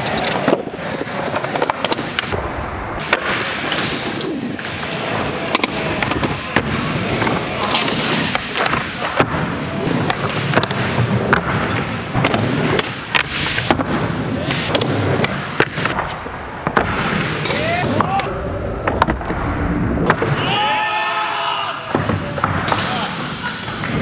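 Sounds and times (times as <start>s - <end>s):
skateboard wheels rolling on concrete: 0.0s - 16.7s.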